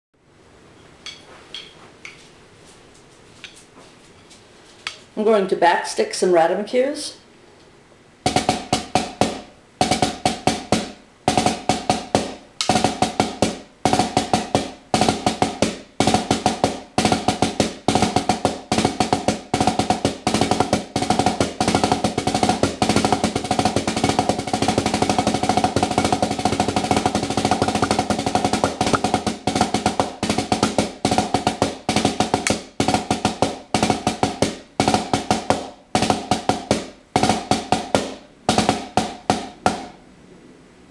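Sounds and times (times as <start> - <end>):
drumsticks on practice pad: 8.2 - 15.4
drumsticks tapping practice pad: 8.2 - 40.0.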